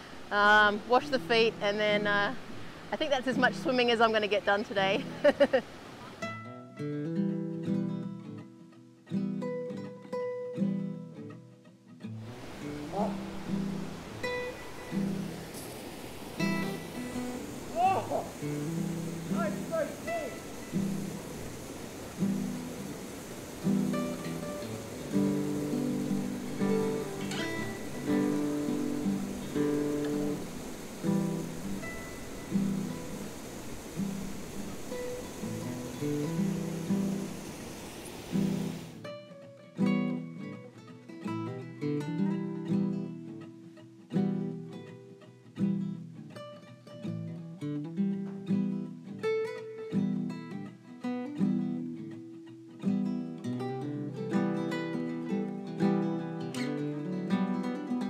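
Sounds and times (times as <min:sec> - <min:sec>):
small waterfall rushing: 0:00.0 - 0:06.4, 0:12.1 - 0:39.1
acoustic guitar music: 0:00.0 - 0:58.0.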